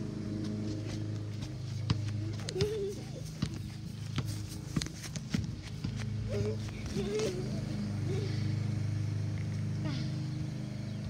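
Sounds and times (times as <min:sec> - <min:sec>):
low motor hum: 0:00.0 - 0:11.0
child laughing: 0:02.3 - 0:03.5, 0:06.3 - 0:08.5.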